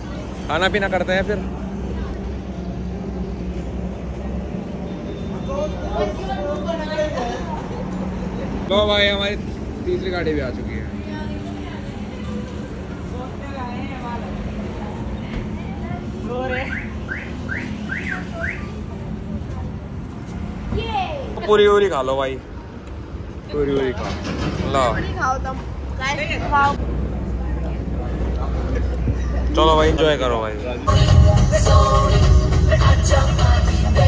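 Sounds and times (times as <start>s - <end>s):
highway traffic rumble: 0.0s - 34.0s.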